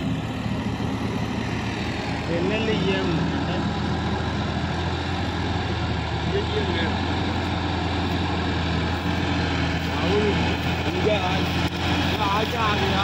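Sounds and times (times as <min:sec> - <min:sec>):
tractor diesel engine running: 0:00.0 - 0:13.0.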